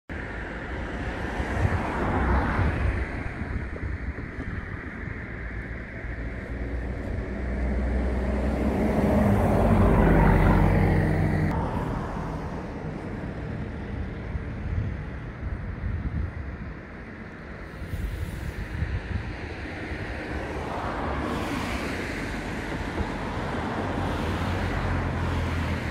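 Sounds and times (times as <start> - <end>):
low traffic rumble: 0.1 - 25.9
car passing by: 0.8 - 15.0, 17.6 - 25.9.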